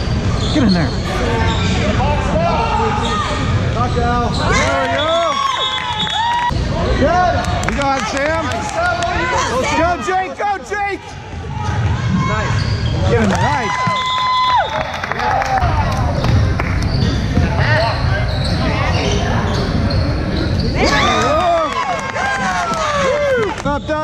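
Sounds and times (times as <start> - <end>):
sneakers squeaking on hardwood: 16.3 - 21.2.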